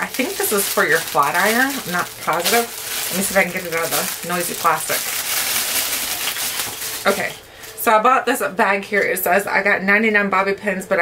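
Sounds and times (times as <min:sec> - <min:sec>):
plastic bag crinkling: 0:00.0 - 0:07.9.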